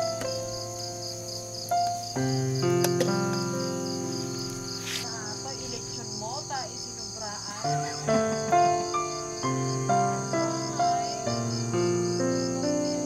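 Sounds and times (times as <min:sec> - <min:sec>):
crickets chirping: 0:00.0 - 0:13.0
soft background music: 0:00.0 - 0:13.0.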